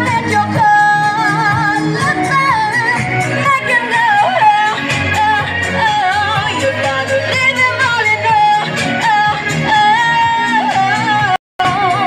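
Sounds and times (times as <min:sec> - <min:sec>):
live pop song over loudspeakers: 0:00.0 - 0:12.0.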